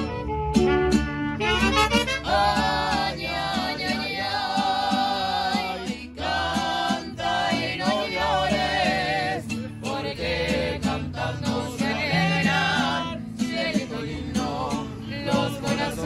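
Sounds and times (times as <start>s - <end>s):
mariachi band playing: 0.0s - 16.0s.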